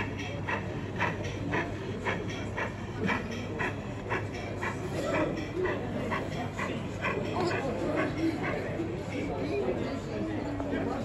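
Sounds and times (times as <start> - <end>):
model locomotive chuffing: 0.0 - 9.7
hall chatter: 0.0 - 11.0.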